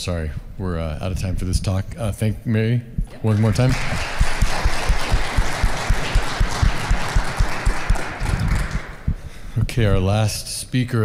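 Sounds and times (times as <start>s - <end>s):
audience applauding: 3.3s - 9.1s.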